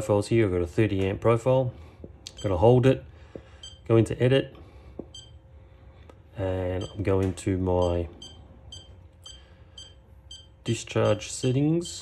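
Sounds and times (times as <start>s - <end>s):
battery charger high-pitched beeps: 2.3s - 2.6s, 3.6s - 3.9s, 5.1s - 5.4s, 6.8s - 7.1s, 7.8s - 12.0s.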